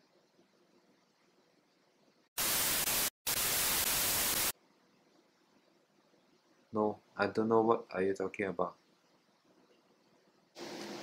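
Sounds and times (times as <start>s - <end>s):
static white noise bursts: 2.4s - 4.6s.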